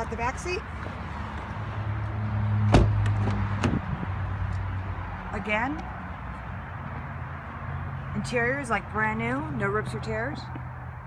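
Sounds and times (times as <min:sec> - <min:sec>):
car door shutting with thump: 0:02.7 - 0:03.8.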